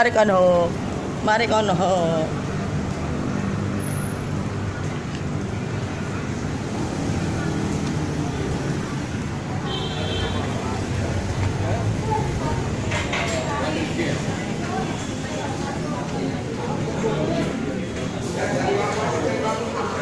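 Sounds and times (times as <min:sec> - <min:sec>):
street traffic rumble: 0:00.0 - 0:20.0.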